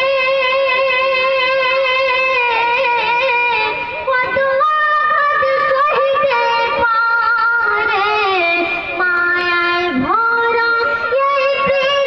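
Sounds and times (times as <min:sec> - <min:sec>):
boy singing devotional song: 0:00.0 - 0:12.0.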